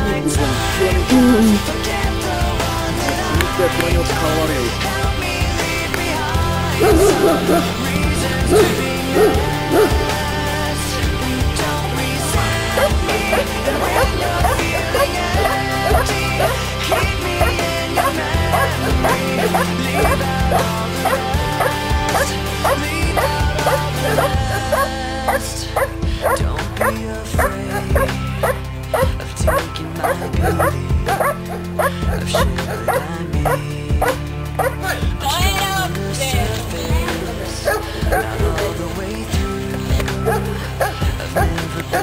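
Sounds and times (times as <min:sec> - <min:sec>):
music with singing: 0:00.0 - 0:42.0
dog barking: 0:06.7 - 0:10.7, 0:11.8 - 0:35.0, 0:37.6 - 0:38.9, 0:40.0 - 0:42.0.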